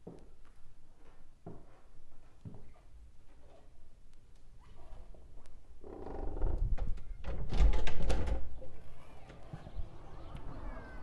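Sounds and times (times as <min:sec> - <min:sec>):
door rumbling open: 0:05.8 - 0:11.0.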